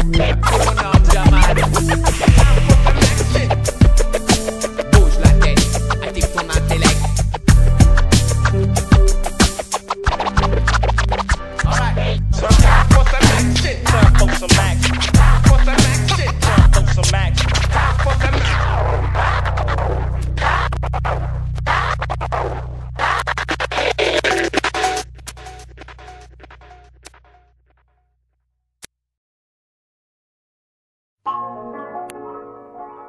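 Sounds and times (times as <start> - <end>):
hip-hop beat with bass and drums: 0.0 - 27.3
turntable scratching: 0.0 - 27.6
low bass drone: 1.4 - 3.8.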